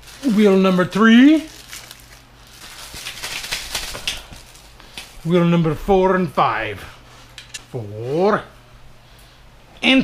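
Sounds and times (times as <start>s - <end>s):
plastic bag crinkling: 0.0s - 5.9s.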